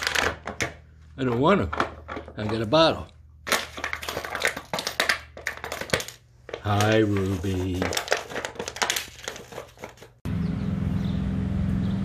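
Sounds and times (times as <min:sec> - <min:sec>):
dog chewing plastic bottle: 0:03.5 - 0:10.2.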